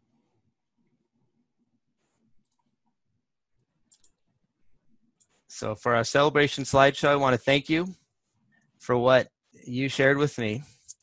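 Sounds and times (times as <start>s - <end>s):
faint clicks: 2.4s - 3.0s, 3.8s - 4.3s.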